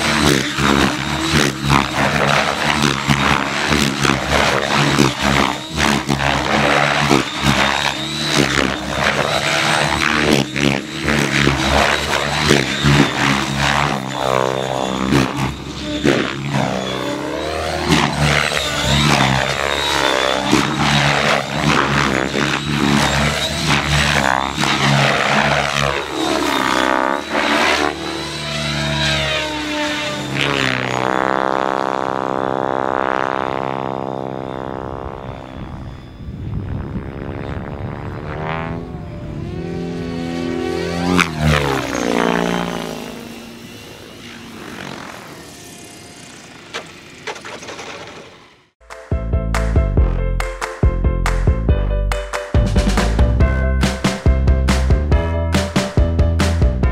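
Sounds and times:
rc helicopter rotor and motor: 0:00.0 - 0:48.8.

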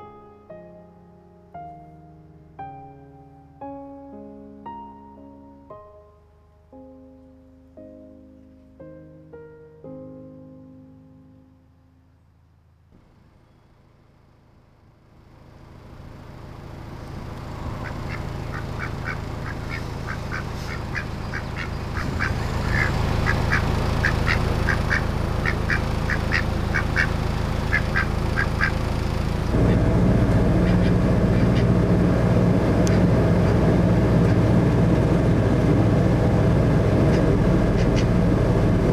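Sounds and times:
boat engine running: 0:15.8 - 0:38.9
duck quacking: 0:17.8 - 0:28.8, 0:30.6 - 0:31.7.

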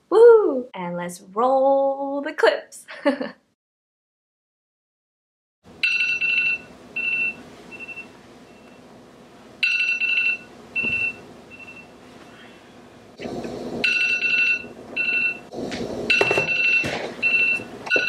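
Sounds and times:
electronic alarm chime: 0:05.8 - 0:08.7, 0:09.6 - 0:11.9, 0:13.8 - 0:15.4, 0:16.1 - 0:18.0.

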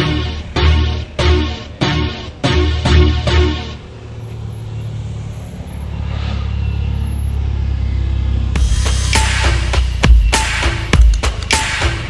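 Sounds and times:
cars driving past slowly: 0:00.0 - 0:12.0.

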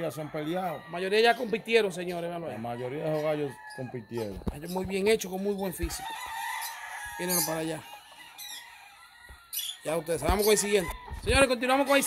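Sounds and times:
faint rooster squawk: 0:02.5 - 0:04.4, 0:05.9 - 0:12.0
man's voice: 0:09.9 - 0:12.0.

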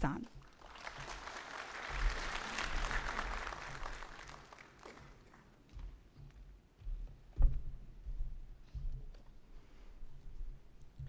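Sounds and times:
audience applauding: 0:00.4 - 0:05.6.

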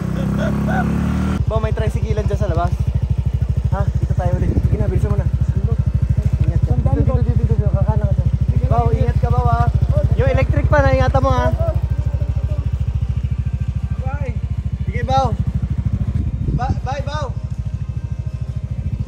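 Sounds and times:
people talking: 0:00.0 - 0:02.9, 0:03.7 - 0:12.9, 0:13.7 - 0:15.5, 0:16.4 - 0:17.5
motorcycle engine idling: 0:00.0 - 0:19.0.

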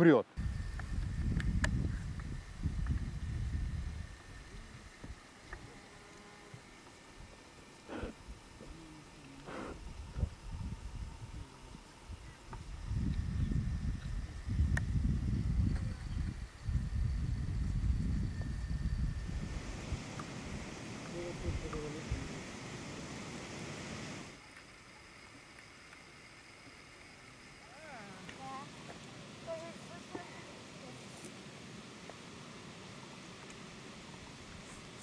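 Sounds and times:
open-air ambience: 0:00.0 - 0:35.0
wind buffeting microphone: 0:00.4 - 0:05.7, 0:09.7 - 0:24.3.

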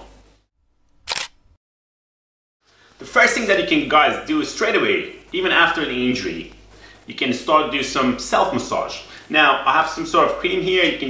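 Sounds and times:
camera shutter sound effect: 0:01.0 - 0:01.5.

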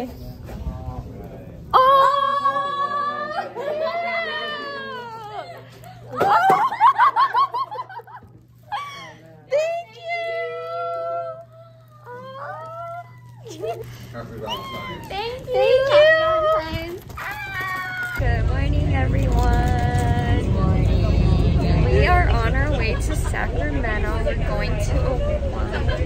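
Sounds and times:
voices squealing and exclaiming: 0:01.7 - 0:06.8, 0:09.6 - 0:18.3
bus interior rumble: 0:18.2 - 0:26.0.

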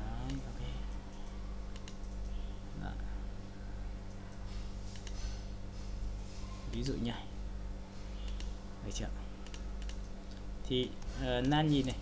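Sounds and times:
low electrical hum: 0:00.0 - 0:12.0
mouse and keyboard clicks: 0:01.1 - 0:02.4, 0:08.2 - 0:08.6.

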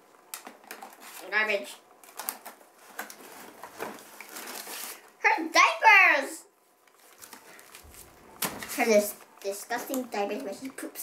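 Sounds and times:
packaging clicks and rustling: 0:00.3 - 0:01.2, 0:02.0 - 0:05.2, 0:06.9 - 0:10.7.

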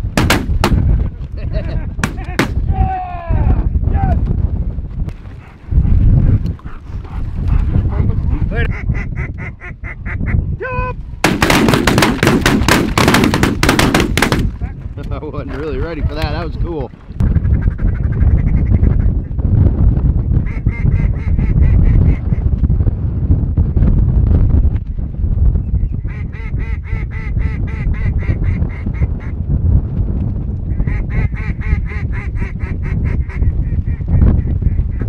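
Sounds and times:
wind rumbling on microphone: 0:00.0 - 0:35.0
ducks and geese calling: 0:08.6 - 0:10.4.

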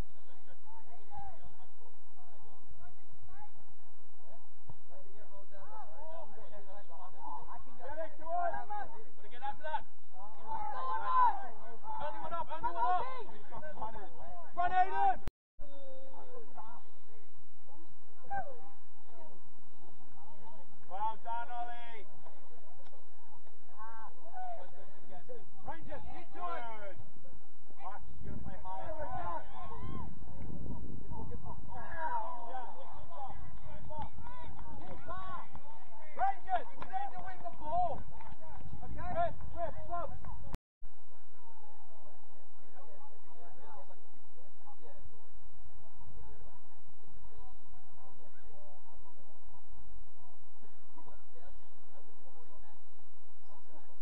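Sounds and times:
players and spectators calling out: 0:04.7 - 0:17.1, 0:17.7 - 0:40.5.

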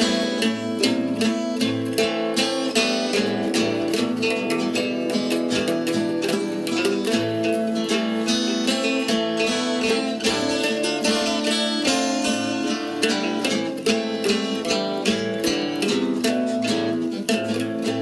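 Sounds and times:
acoustic guitar strumming: 0:00.0 - 0:18.0
small stringed instrument: 0:00.0 - 0:18.0.

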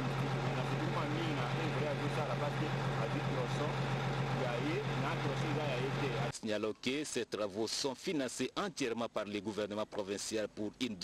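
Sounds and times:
diesel engine running: 0:00.0 - 0:06.3.

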